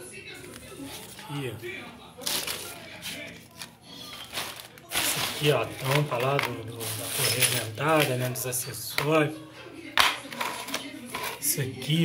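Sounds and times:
plastic sheeting crinkling: 2.2s - 7.4s.

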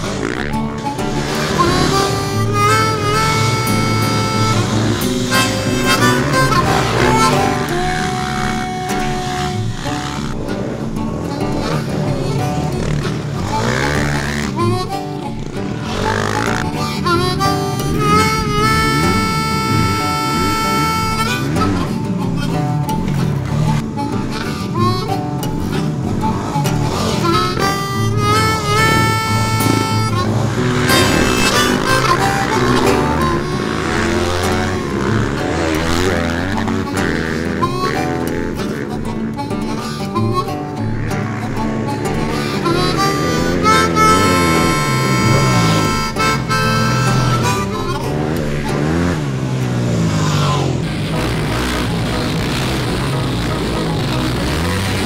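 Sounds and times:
music with harmonica: 0.0s - 55.0s.

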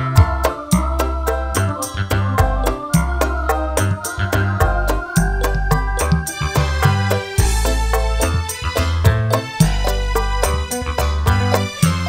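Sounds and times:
deep bass notes: 0.0s - 12.0s
live band through a pa: 0.0s - 12.0s.

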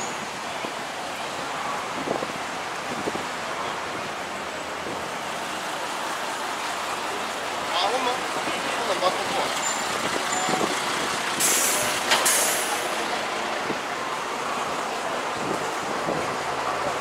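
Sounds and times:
street noise: 0.0s - 17.0s
bus air brake hissing: 11.4s - 12.9s.

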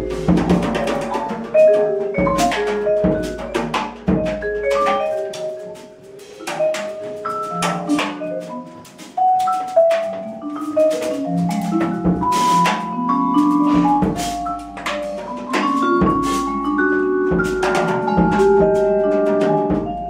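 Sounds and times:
sharp percussion hits: 0.0s - 20.0s
small jazz band playing: 0.0s - 20.0s.

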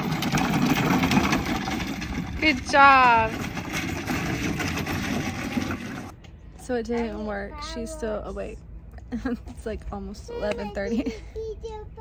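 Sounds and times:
plastic wheels rolling on gravel: 0.0s - 6.2s.

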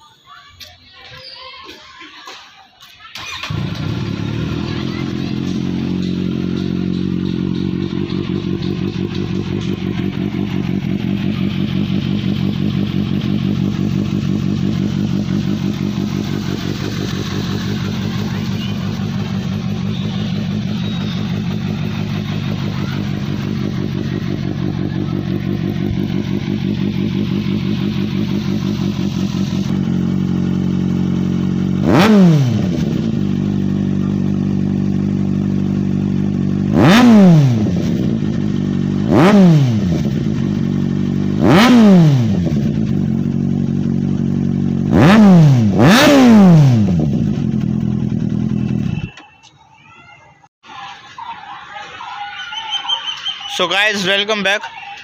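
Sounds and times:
motorcycle engine idling: 3.1s - 49.9s.

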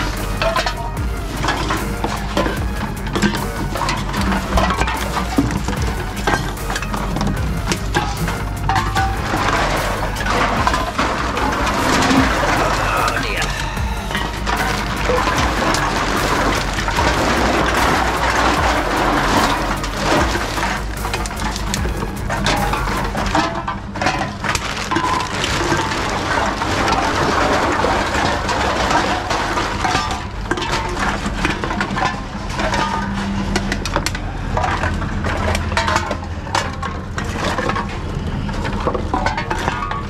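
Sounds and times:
machine hum: 0.0s - 24.0s
containers cracking and crunching: 0.0s - 40.0s.

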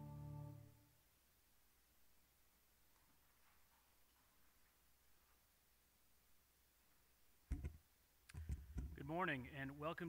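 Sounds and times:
microphone handling clicks and knocks: 7.5s - 9.0s
person speaking: 8.4s - 10.0s.

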